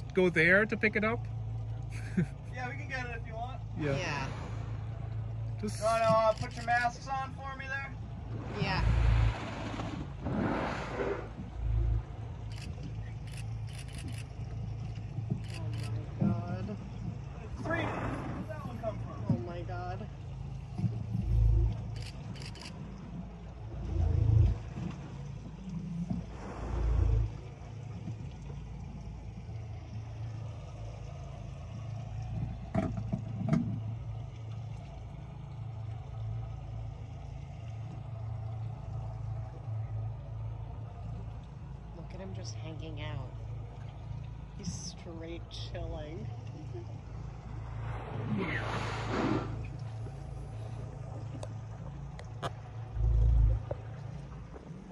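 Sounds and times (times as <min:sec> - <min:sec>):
boat engine idling: 0:00.0 - 0:54.9
low rumble: 0:00.0 - 0:54.9.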